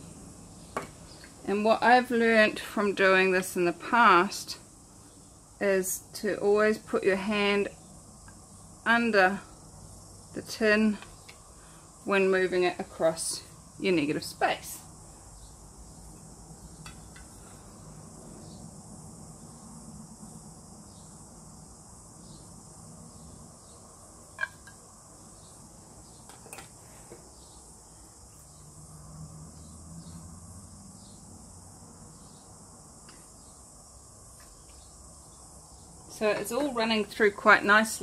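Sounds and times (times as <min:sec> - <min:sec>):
insect chirring: 0:00.0 - 0:38.0.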